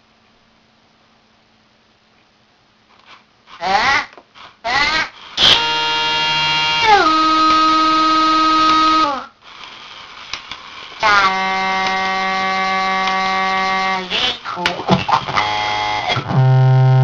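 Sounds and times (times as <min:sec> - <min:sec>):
electronic toy voice warbling: 0:03.6 - 0:09.3, 0:11.0 - 0:17.0
held electronic tone: 0:05.4 - 0:09.2, 0:15.4 - 0:17.0
clicks: 0:07.4 - 0:09.0, 0:13.0 - 0:13.3.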